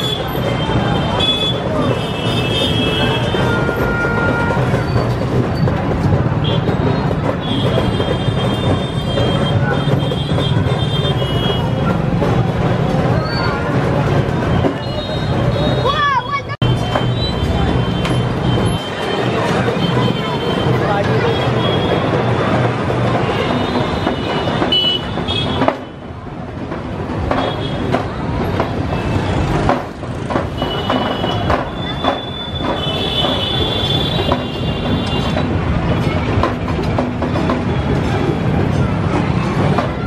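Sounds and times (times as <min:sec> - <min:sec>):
high-pitched vehicle horns: 0:00.0 - 0:05.2, 0:30.5 - 0:35.5
crowd chatter: 0:00.0 - 0:40.0
traffic: 0:00.0 - 0:40.0.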